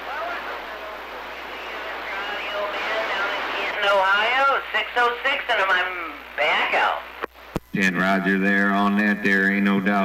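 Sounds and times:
radio static hiss: 0:00.0 - 0:10.0
weak broken radio voice: 0:00.0 - 0:10.0.

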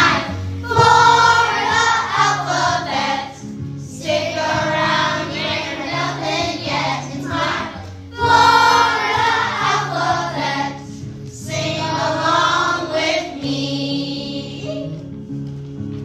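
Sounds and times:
choir singing: 0:00.0 - 0:10.8, 0:11.4 - 0:14.9
instrumental backing: 0:00.0 - 0:16.0.

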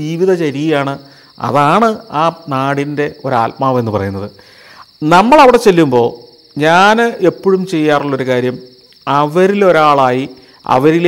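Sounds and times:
man speaking: 0:00.0 - 0:04.4, 0:05.0 - 0:11.0
night insects trilling: 0:00.0 - 0:11.0.

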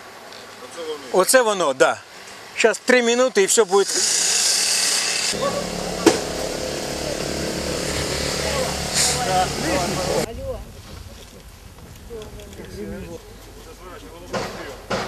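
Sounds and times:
power tool motor humming: 0:03.8 - 0:10.3
rush of noise: 0:05.4 - 0:10.3
sharp knock: 0:05.5 - 0:06.5.

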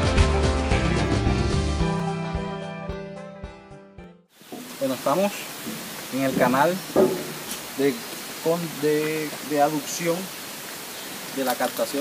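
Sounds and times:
background music: 0:00.0 - 0:04.2
steady hiss: 0:04.4 - 0:12.0
man speaking: 0:04.8 - 0:07.1, 0:07.7 - 0:10.3, 0:11.4 - 0:12.0.

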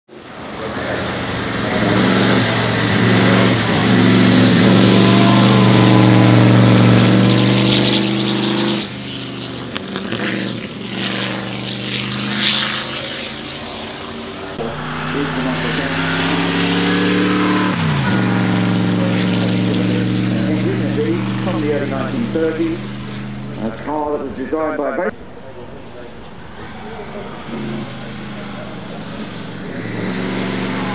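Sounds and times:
racing car engine driving past: 0:00.1 - 0:30.9.

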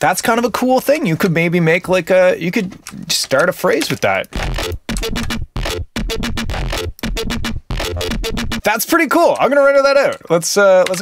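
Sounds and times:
buzzy stuttering electronic bass: 0:04.4 - 0:08.7.

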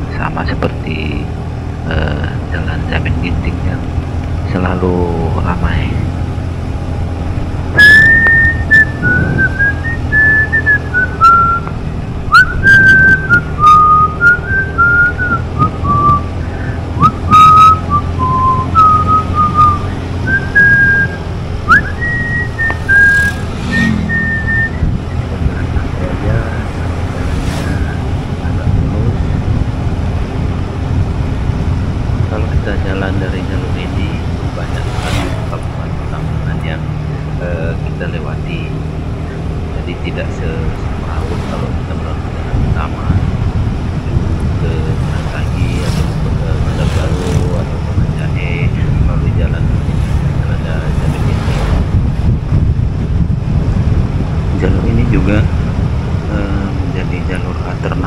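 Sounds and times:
motorcycle engine drone: 0:00.0 - 0:58.0
wind on microphone: 0:07.3 - 0:37.4, 0:40.4 - 0:58.0
person whistling a tune: 0:07.8 - 0:11.7, 0:12.3 - 0:25.0.

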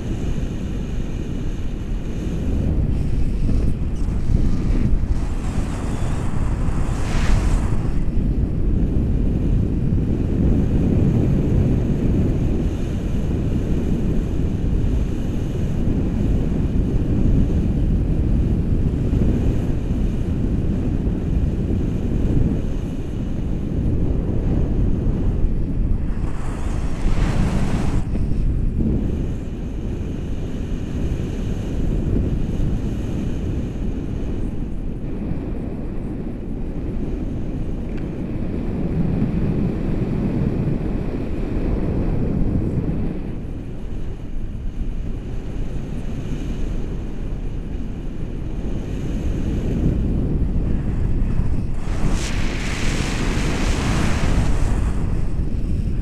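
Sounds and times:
wind buffeting microphone: 0:00.0 - 0:56.0
hiss: 0:05.0 - 0:08.1, 0:51.4 - 0:55.8.

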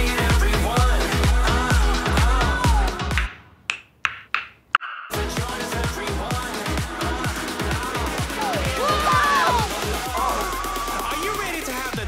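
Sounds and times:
dance music: 0:00.0 - 0:03.3, 0:05.1 - 0:12.0.

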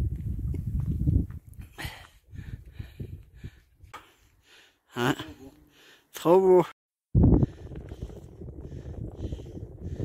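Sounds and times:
wind buffeting microphone: 0:00.0 - 0:03.9, 0:07.1 - 0:10.0.

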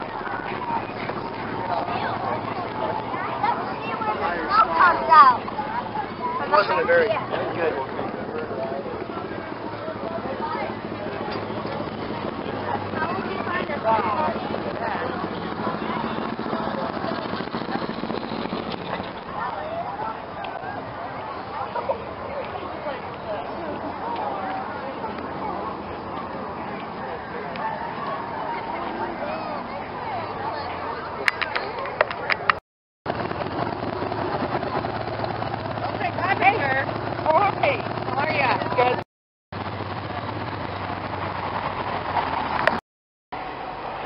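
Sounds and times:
people talking: 0:00.0 - 0:32.6, 0:35.9 - 0:39.0
crowd chatter: 0:00.0 - 0:39.0, 0:39.6 - 0:42.8, 0:43.4 - 0:44.0
motorcycle engine running: 0:05.4 - 0:21.7, 0:33.1 - 0:39.0, 0:39.6 - 0:42.8.

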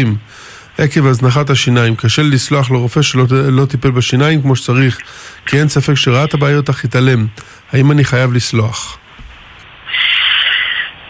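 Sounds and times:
breathy hiss over telephone: 0:00.0 - 0:11.0.

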